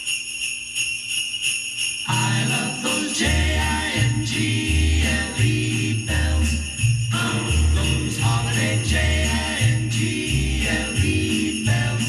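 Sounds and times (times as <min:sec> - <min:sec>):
jingle bells shaken: 0:00.0 - 0:12.0
christmas music on radio speaker: 0:00.1 - 0:12.0.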